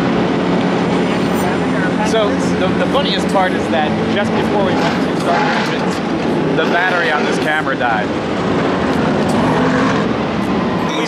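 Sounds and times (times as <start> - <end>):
race car engines running: 0.0 - 11.0.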